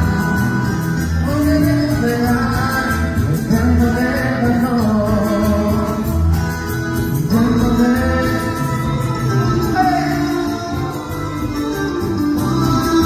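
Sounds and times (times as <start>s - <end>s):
amplified backing music with bass beat: 0.0s - 13.0s
men singing into microphones: 0.0s - 13.0s.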